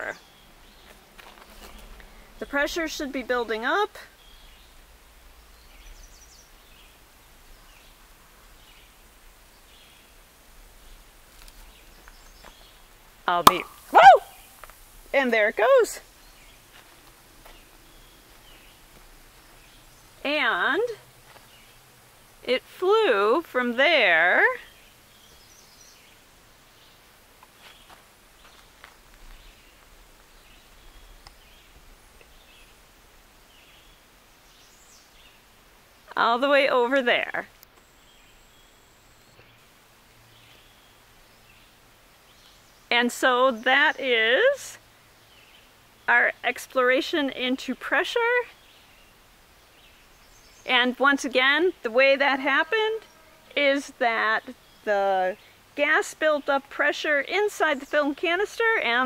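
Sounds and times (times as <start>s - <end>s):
distant birds chirping: 0.0s - 59.0s.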